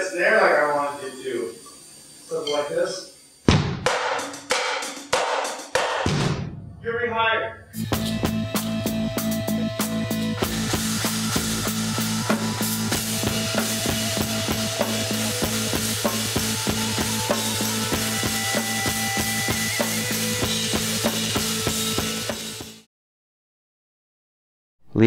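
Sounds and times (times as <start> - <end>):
drum kit beat: 3.5 - 6.8, 7.8 - 22.8
bass and guitar drone: 6.5 - 22.8
cymbals: 7.0 - 22.7.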